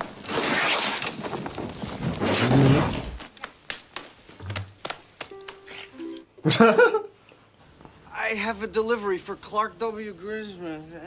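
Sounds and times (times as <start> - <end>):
sharp knocks and clatters: 3.3 - 5.6.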